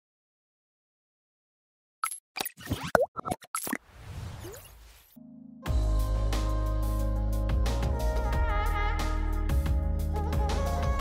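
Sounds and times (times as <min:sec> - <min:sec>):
cartoon pops and plops: 0:02.0 - 0:03.8.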